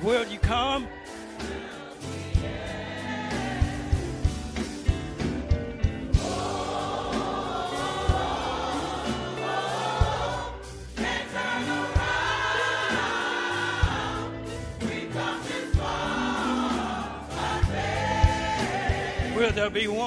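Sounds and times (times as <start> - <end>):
church choir singing: 0.0 - 20.0.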